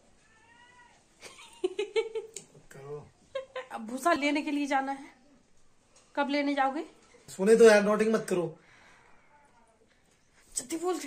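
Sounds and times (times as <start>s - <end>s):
cat meowing: 0.2s - 1.1s.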